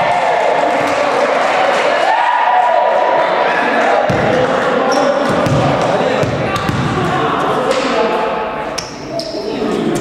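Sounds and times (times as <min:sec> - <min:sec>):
team shouting and cheering: 0:00.0 - 0:08.5.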